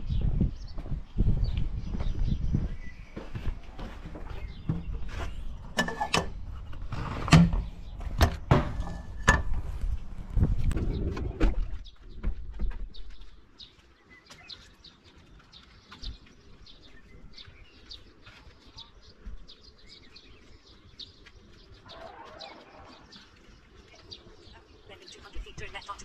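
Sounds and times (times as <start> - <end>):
small birds chirping: 0.0 - 26.0
knocks and thumps: 3.8 - 13.2.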